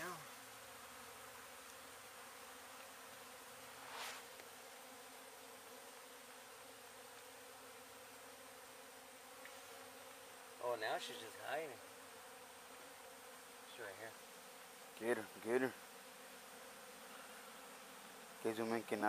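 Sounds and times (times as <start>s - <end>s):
bees buzzing: 0.0s - 19.0s
brief rustle: 3.7s - 4.5s.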